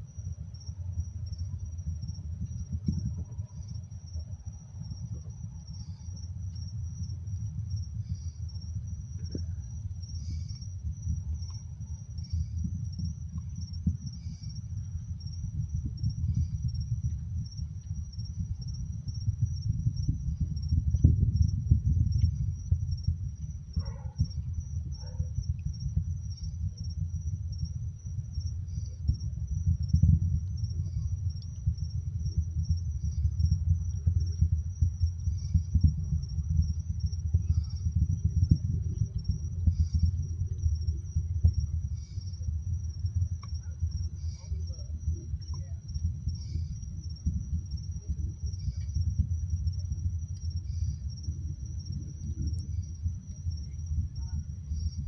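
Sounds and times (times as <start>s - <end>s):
crickets trilling: 0.0s - 55.0s
distant rocket rumble: 0.3s - 55.0s.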